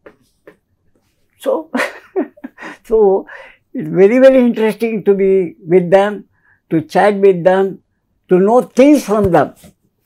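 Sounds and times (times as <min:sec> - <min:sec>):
man speaking: 0:01.4 - 0:01.9, 0:02.8 - 0:09.7
man laughing: 0:01.6 - 0:03.2.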